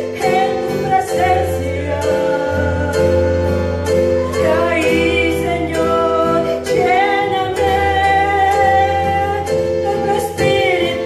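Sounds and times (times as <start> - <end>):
guitar: 0.0 - 11.0
keyboard: 0.0 - 11.0
woman singing into a microphone: 0.0 - 11.0.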